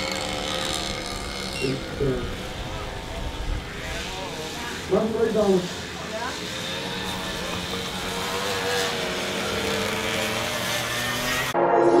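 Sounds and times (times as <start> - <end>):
motorcycle engine running: 0.0 - 11.6.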